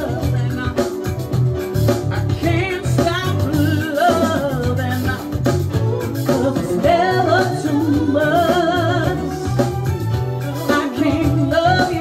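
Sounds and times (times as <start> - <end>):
woman singing with vibrato: 0.0 - 1.2, 2.1 - 12.0
electric bass: 0.0 - 12.0
keyboards: 0.0 - 12.0
steady beat: 0.0 - 12.0.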